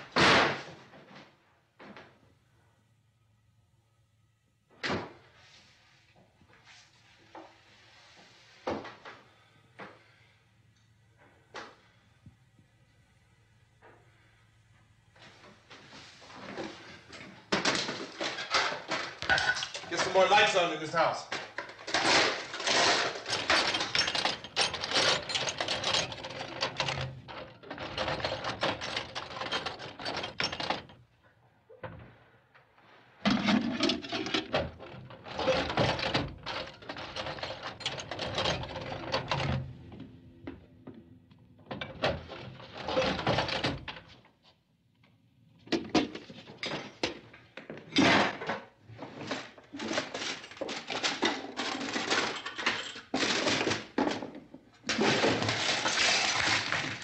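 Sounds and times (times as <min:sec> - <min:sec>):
small hard objects clattering: 0:17.6 - 0:25.6, 0:54.8 - 0:57.0.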